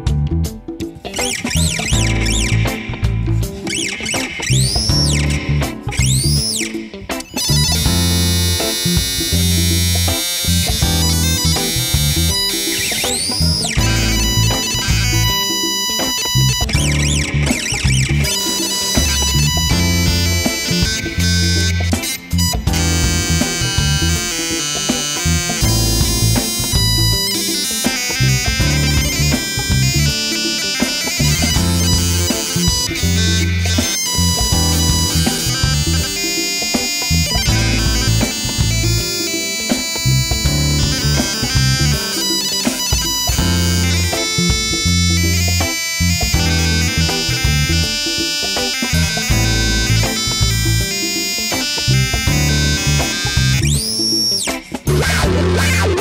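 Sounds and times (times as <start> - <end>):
pulsing low rhythm: 0.0 - 6.8, 7.4 - 56.0
buzzy electronic instrument notes: 0.0 - 56.0.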